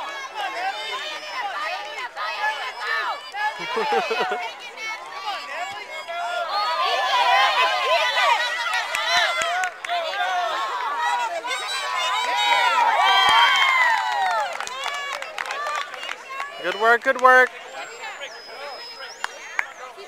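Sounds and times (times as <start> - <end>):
young children shouting: 0.0 - 14.4.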